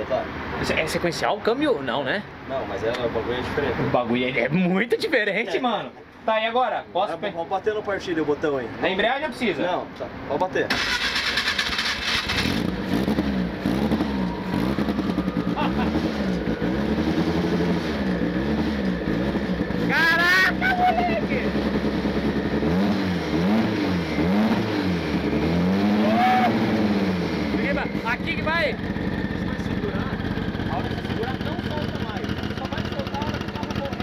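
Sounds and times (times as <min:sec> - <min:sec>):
turbocharged engine revving: 0:10.7 - 0:34.0.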